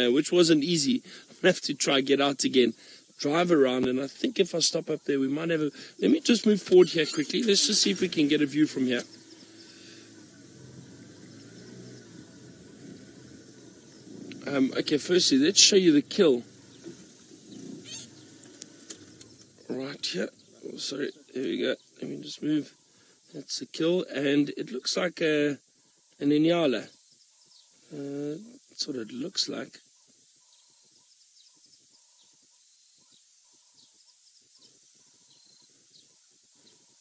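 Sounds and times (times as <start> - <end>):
faint animal call: 5.8 - 20.4
small animal chirps and calls: 6.6 - 8.1, 16.7 - 19.5.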